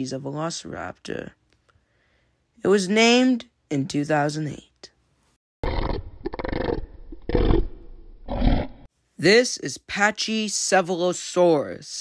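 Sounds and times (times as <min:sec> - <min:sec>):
rough dinosaur calls: 0:05.6 - 0:08.9.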